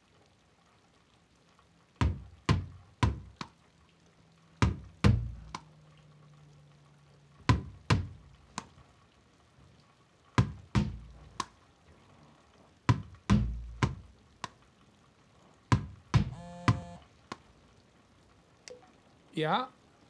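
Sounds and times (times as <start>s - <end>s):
ball bouncing off a wall: 2.0s - 3.5s, 4.6s - 5.7s, 7.5s - 8.7s, 10.4s - 11.5s, 12.9s - 14.6s, 15.7s - 17.4s.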